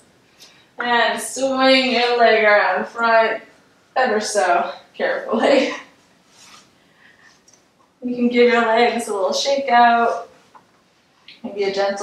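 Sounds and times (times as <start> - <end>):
clothing rustling on yoga mats: 5.4 - 7.4.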